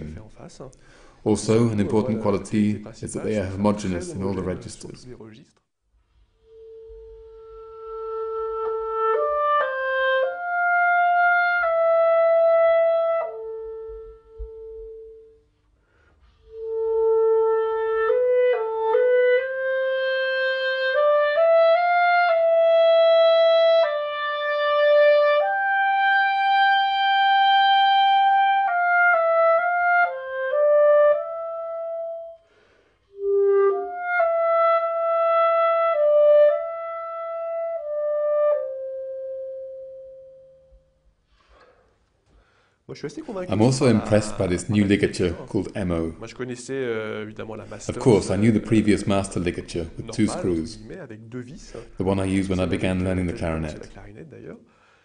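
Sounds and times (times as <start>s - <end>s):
solo clarinet melody: 6.1s - 15.6s, 16.2s - 41.1s.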